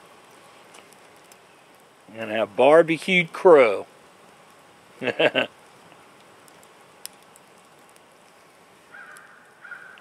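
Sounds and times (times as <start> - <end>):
campfire crackling: 0.0 - 10.0.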